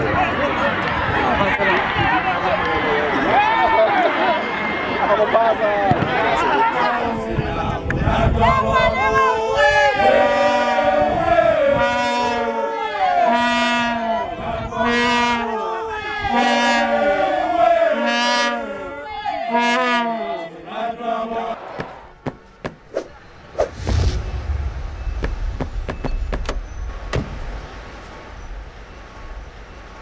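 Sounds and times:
group chanting: 6.4 - 22.5
low rumbling whoosh: 22.8 - 30.0.

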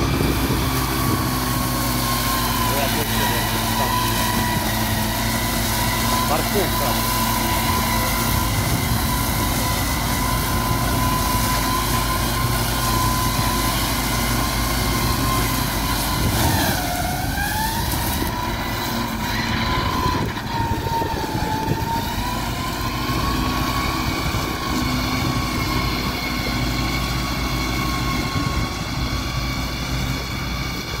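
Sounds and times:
disc mower whine: 0.0 - 31.0
tractor engine: 0.0 - 31.0.

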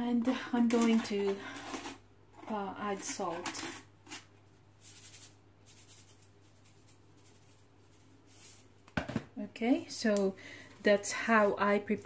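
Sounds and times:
hand rubbing salt into fish: 4.8 - 8.8.

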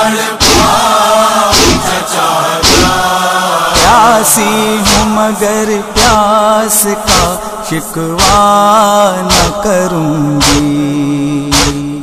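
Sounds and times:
voices chanting a refrain: 0.0 - 8.5
sharp chest strikes: 1.6 - 1.8, 2.6 - 3.0, 3.8 - 4.0, 4.8 - 5.2, 6.0 - 6.2, 7.1 - 7.4, 9.3 - 9.6, 10.4 - 10.8, 11.5 - 12.0.

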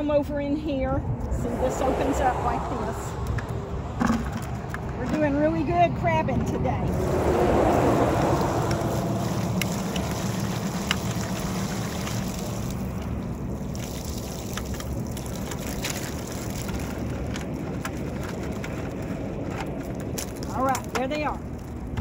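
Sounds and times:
wind rumble on microphone: 0.0 - 22.0
crabs clicking on plastic and wire: 14.4 - 22.0.

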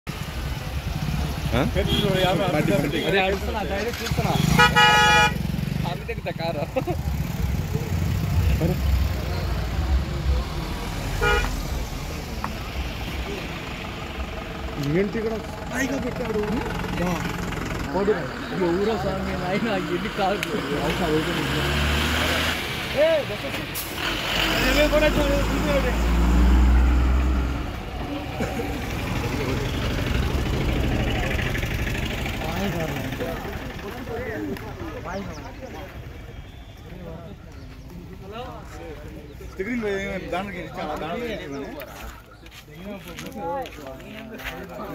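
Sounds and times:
car engines rumbling: 0.0 - 44.9
vehicle horn: 1.8 - 2.4, 4.2 - 5.5, 11.1 - 11.7.

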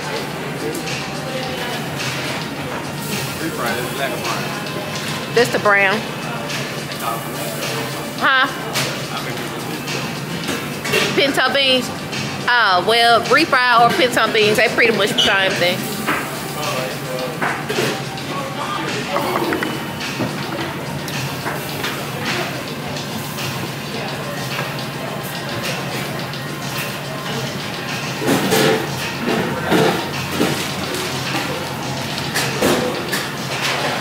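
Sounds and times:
people talking: 0.0 - 33.2
background music: 0.0 - 34.0.

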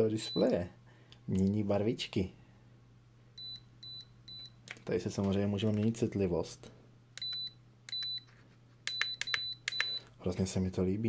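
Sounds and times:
thermometer high beeps: 0.2 - 0.6, 3.4 - 4.5, 7.2 - 8.2, 8.9 - 10.0.

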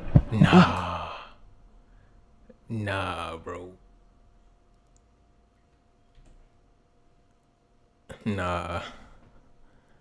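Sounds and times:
man sighing: 0.3 - 1.4.

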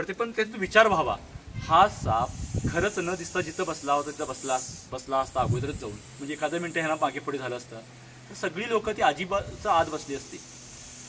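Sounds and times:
man speaking: 0.0 - 10.5
snake hissing: 2.1 - 8.3, 9.5 - 11.0.

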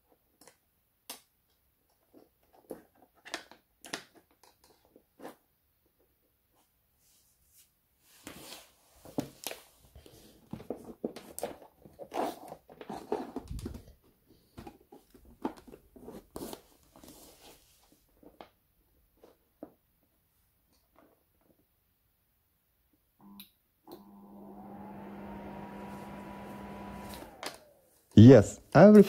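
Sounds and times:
wires and connectors rustling: 26.0 - 27.8.

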